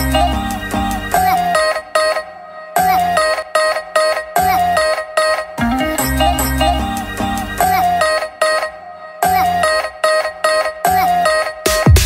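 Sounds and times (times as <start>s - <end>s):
melodic background music with bass: 0.0s - 12.0s.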